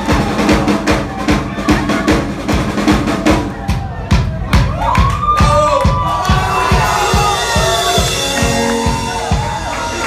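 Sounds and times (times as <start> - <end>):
crowd cheering and shouting: 0.0 - 10.0
drum beat: 0.0 - 10.0
live band playing loudly: 0.0 - 10.0.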